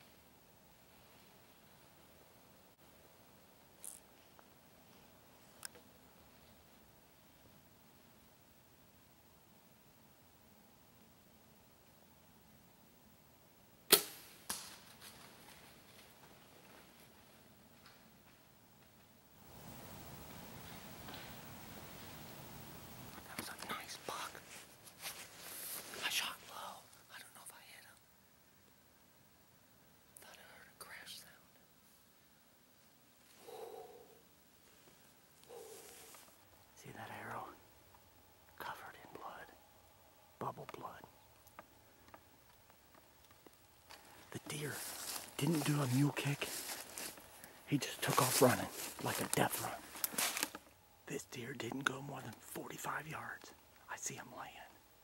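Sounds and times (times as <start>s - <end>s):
arrow striking deer: 13.9s - 15.0s
bow string release crack: 13.9s - 15.1s
man whispering: 23.2s - 24.6s, 25.8s - 28.1s, 30.2s - 31.6s, 36.8s - 37.6s, 38.6s - 39.6s, 40.3s - 41.3s, 44.2s - 54.8s
rustles and snaps in leaves: 46.5s - 50.7s.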